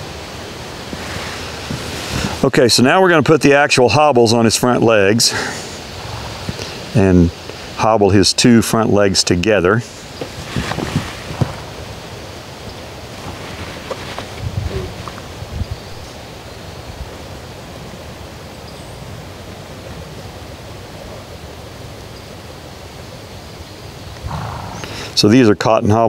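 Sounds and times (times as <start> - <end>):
rushing wind: 0.0 - 25.5
soft thumps and rustles: 10.2 - 11.7, 13.2 - 15.3.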